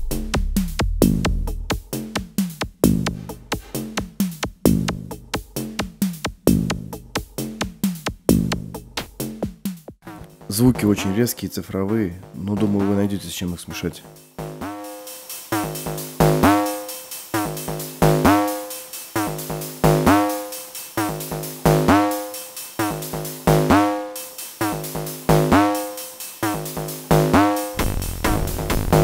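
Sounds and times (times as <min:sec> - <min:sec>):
drum machine looped pattern: 0:00.0 - 0:29.0.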